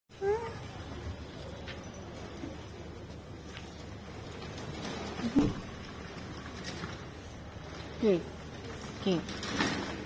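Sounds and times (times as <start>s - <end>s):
low street background: 0.1s - 10.0s.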